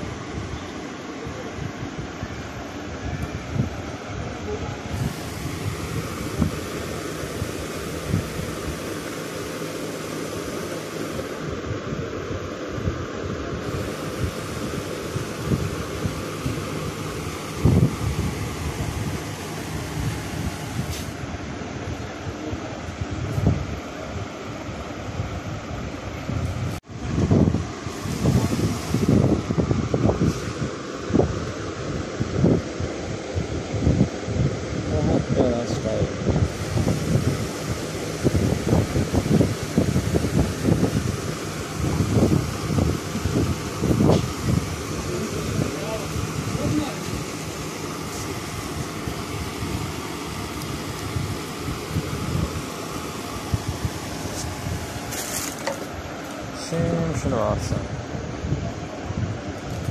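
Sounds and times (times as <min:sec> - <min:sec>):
steady mechanical hum: 0:00.0 - 0:59.9.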